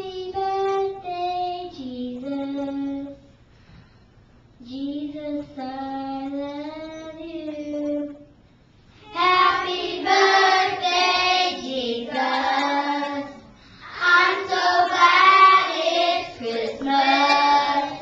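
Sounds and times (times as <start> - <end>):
children singing together: 9.0 - 18.0.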